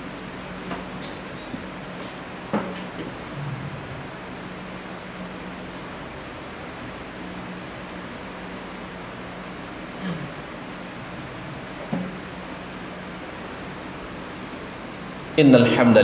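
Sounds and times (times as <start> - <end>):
room noise hiss and hum: 0.0 - 16.0.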